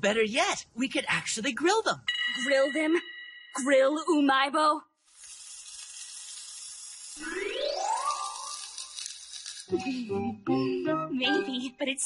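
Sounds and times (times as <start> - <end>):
sizzling hiss: 5.0 - 9.8.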